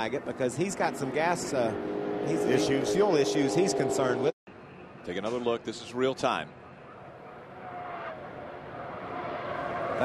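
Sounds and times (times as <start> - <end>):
truck engines running: 0.0 - 7.5.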